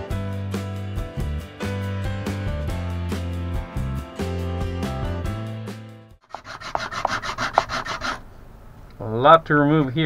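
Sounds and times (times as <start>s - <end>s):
music: 0.0s - 6.2s
resin rubbed on sandpaper: 6.3s - 8.2s.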